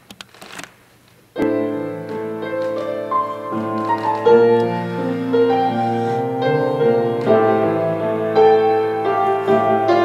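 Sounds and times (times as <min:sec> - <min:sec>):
grand piano chord ringing: 0:01.4 - 0:10.0.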